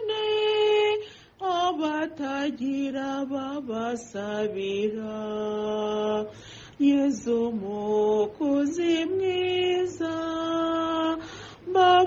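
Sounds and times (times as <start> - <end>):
woman singing a hymn: 0.0 - 12.0.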